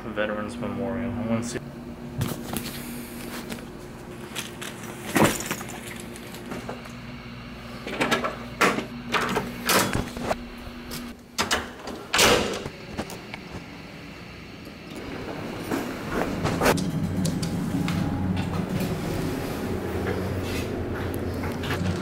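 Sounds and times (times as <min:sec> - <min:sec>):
elevator hum: 0:00.3 - 0:22.0
door swinging shut: 0:11.4 - 0:12.7
elevator doors sliding: 0:14.8 - 0:22.0.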